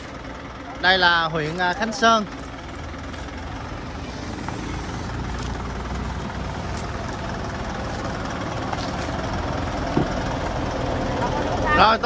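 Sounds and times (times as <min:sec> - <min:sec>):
minibus engine idling: 0:00.0 - 0:12.0.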